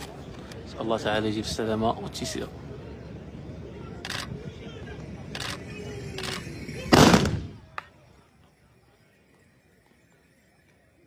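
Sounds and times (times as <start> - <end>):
musket volley blast: 6.9 - 7.7
single sharp gunshot crack: 7.0 - 7.6.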